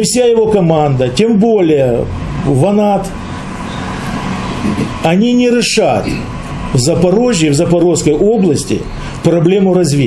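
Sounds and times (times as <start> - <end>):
low rumble with hiss: 0.0 - 10.0.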